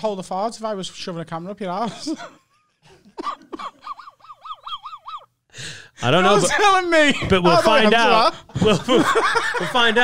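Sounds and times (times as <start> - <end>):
man laughing high-pitched: 3.2 - 5.3
gasping intake of breath: 5.5 - 6.0.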